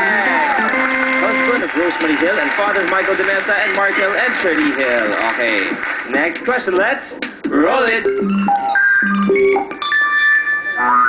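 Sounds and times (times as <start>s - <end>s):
electronic tones stepping upward: 8.1s - 11.0s.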